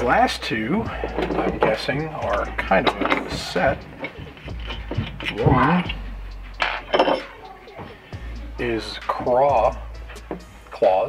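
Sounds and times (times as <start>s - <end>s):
metal mold halves clinking: 1.0s - 6.0s, 6.6s - 7.4s.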